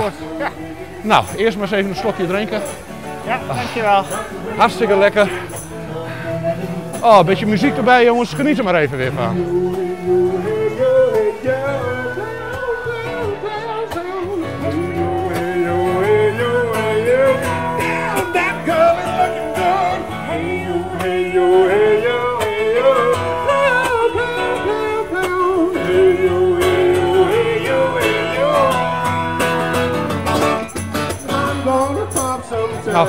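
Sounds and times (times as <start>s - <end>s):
strummed acoustic guitar: 0.0s - 33.0s
woman singing: 9.4s - 29.6s.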